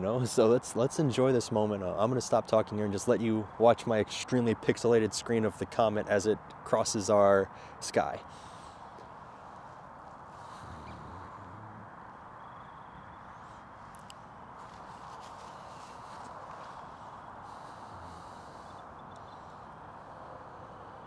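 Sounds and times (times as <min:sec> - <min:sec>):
faint outdoor hum: 0:00.0 - 0:21.0
faint ticks: 0:13.9 - 0:16.7, 0:18.7 - 0:19.5.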